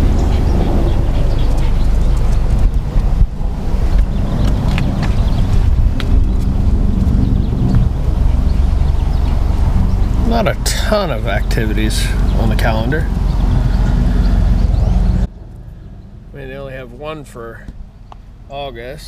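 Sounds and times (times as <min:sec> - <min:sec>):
wind buffeting microphone: 0:00.0 - 0:16.9.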